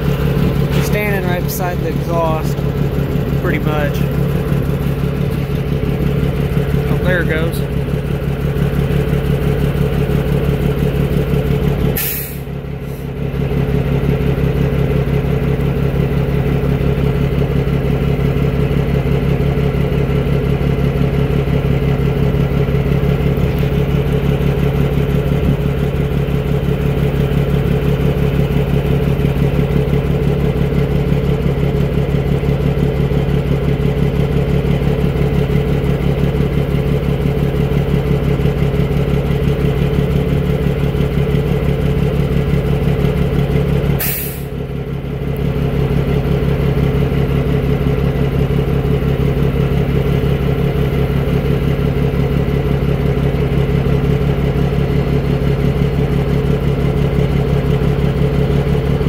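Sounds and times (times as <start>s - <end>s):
diesel engine running loudly: 0.0s - 59.0s.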